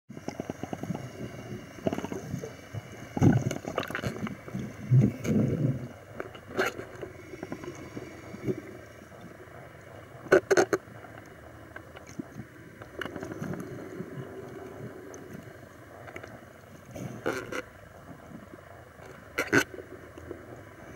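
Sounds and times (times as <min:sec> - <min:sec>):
water sloshing and bubbling underwater: 0:00.1 - 0:20.9.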